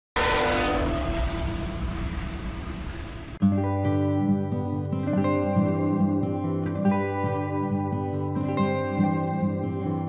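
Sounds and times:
locomotive horn: 0.2s - 3.2s
freight train passing: 0.2s - 3.4s
music: 3.4s - 10.0s.

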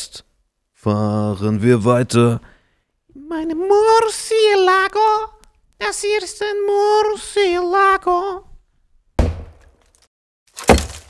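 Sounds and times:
microphone thud on table: 9.2s - 9.7s.

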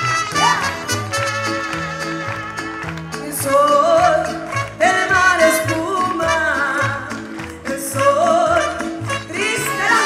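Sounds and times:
amplified latin music: 0.0s - 10.0s
woman singing into microphone: 3.2s - 10.0s.

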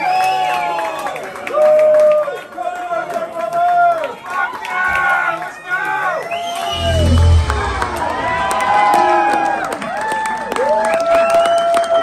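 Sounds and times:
crowd voices singing long notes: 6.8s - 9.9s.

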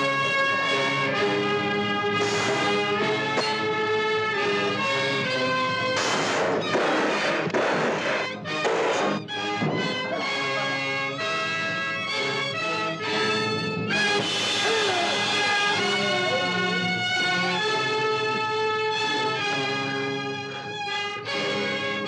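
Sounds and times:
orchestral score with brass and strings: 0.0s - 22.0s
noisy crashing passages: 1.5s - 10.3s, 13.4s - 16.8s.

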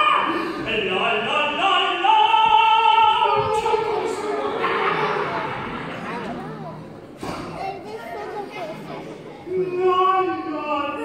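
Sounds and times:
children talking and calling out: 2.9s - 11.0s.

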